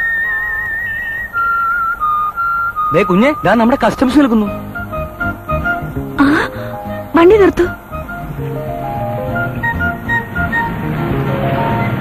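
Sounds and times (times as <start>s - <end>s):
instrumental backing with pulsing beat: 4.4s - 11.9s.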